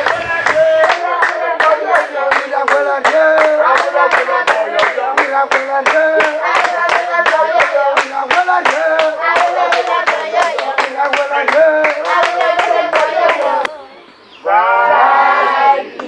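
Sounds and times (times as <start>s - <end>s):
women clapping in rhythm: 0.0s - 13.7s
women singing a chant-like song: 0.0s - 16.0s.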